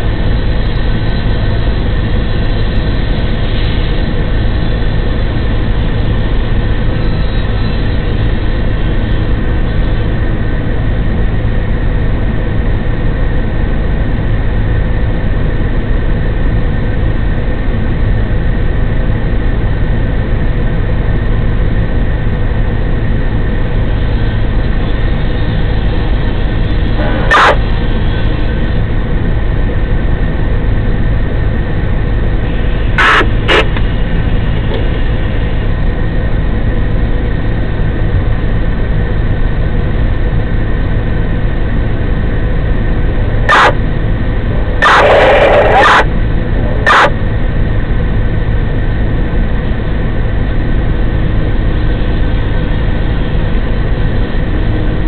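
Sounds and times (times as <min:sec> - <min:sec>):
heavy diesel pump engine drone: 0:00.0 - 0:55.0.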